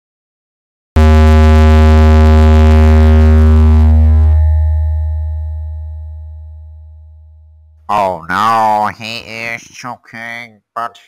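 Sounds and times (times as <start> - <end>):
deep synthesized note: 1.0 - 7.9.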